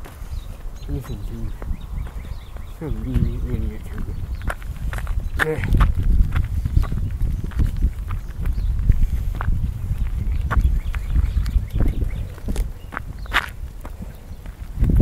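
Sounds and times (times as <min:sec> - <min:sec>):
footsteps: 0:00.0 - 0:15.0
wind buffeting microphone: 0:00.0 - 0:15.0.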